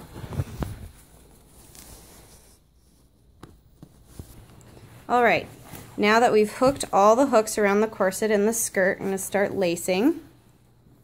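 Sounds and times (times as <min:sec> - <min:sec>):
hands rustling fabric: 0:00.0 - 0:08.1.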